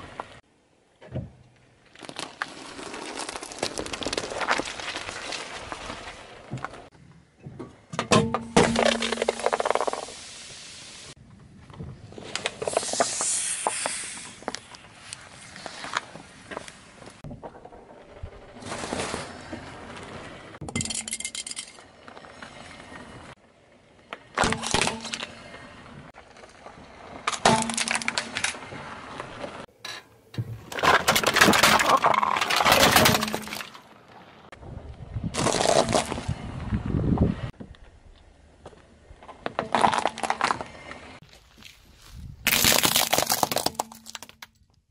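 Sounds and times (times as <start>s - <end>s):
can being crushed by tyre: 1.9s - 6.0s, 27.3s - 28.6s, 30.5s - 33.8s, 35.4s - 36.3s, 42.4s - 44.6s
carbonated drink spraying hiss: 12.7s - 14.4s.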